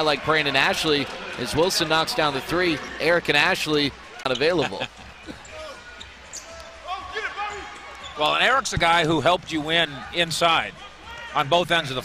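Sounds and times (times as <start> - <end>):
murmur of crowd: 0.0 - 12.0.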